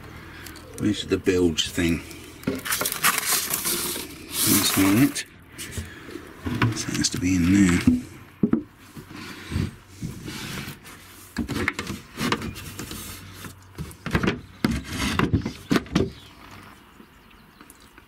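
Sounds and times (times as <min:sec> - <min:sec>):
wooden boards knocking and scraping: 0:05.7 - 0:10.7, 0:11.3 - 0:16.3.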